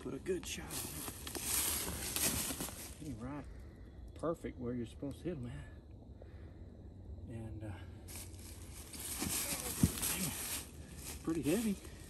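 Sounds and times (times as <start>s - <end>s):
dry leaves rustling and crackling: 0.0s - 3.1s, 8.1s - 12.0s.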